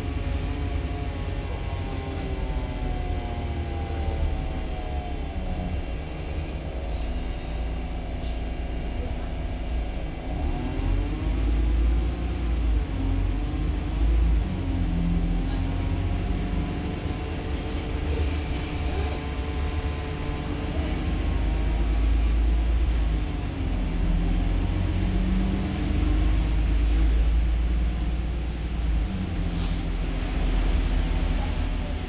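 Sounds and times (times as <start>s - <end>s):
bus engine whine: 0.0s - 32.0s.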